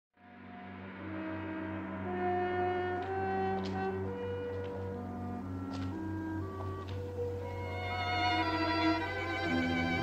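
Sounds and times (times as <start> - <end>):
slow held brass notes: 0.2 - 10.0.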